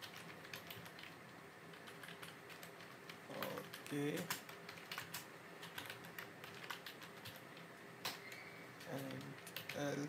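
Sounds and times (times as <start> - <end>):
computer keyboard typing: 0.0 - 10.0.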